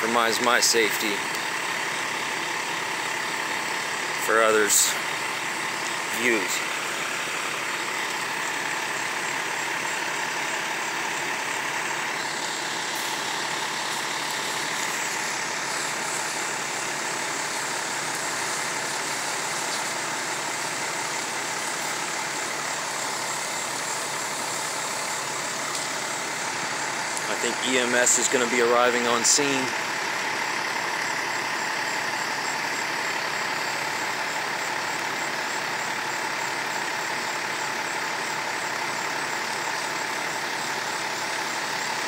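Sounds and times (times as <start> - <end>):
diesel engines running: 0.0 - 42.0.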